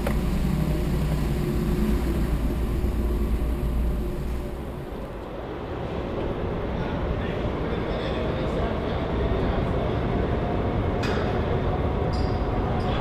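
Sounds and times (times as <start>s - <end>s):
car cabin rumble: 0.0s - 5.2s.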